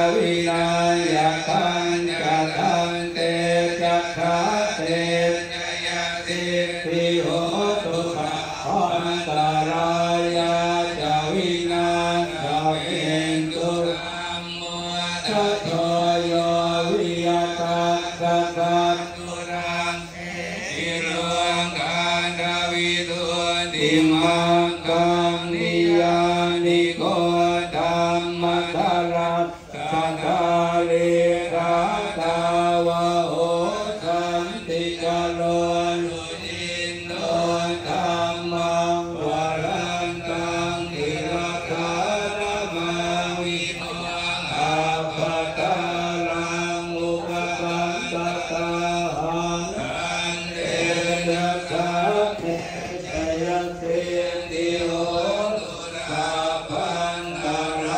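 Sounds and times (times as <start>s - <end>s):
monks chanting into microphones: 0.0s - 57.9s.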